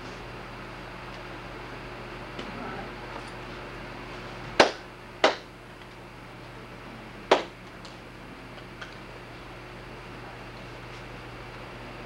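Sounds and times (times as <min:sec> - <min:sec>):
sharp hand claps with echo: 0:04.6 - 0:05.5, 0:07.3 - 0:07.5.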